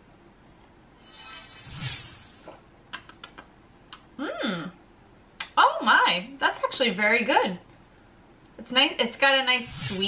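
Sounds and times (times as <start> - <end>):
shimmering chime sound effect: 1.0 - 2.5.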